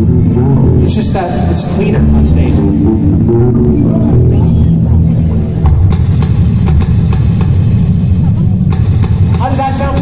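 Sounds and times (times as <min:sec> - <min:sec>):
live band through a pa: 0:00.0 - 0:10.0
sharp drum hits: 0:08.7 - 0:10.0.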